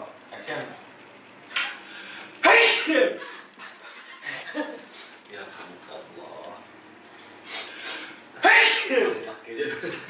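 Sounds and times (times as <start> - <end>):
person sneezing: 2.4 - 3.1, 7.5 - 9.0.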